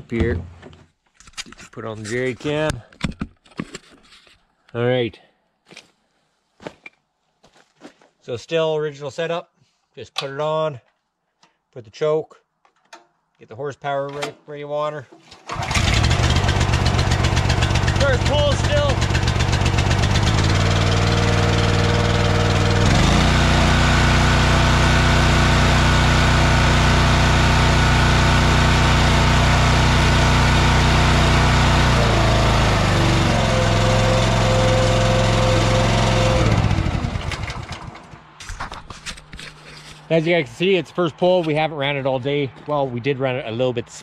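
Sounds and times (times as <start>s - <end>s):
single-cylinder engine running: 15.4s - 38.2s.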